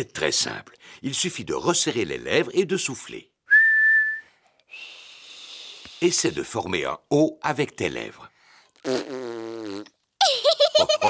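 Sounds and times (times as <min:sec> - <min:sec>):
person speaking: 0:05.9 - 0:08.3, 0:10.8 - 0:11.0
child blowing a raspberry: 0:08.8 - 0:09.9.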